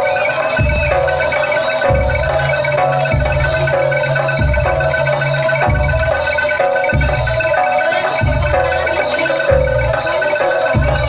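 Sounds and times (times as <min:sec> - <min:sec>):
struck metallophones melody: 0:00.0 - 0:11.0.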